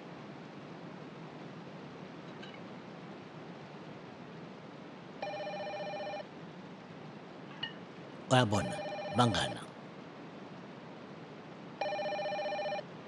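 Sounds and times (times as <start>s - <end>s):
person speaking: 8.2s - 9.8s
telephone ringing: 8.3s - 9.6s, 11.8s - 12.8s.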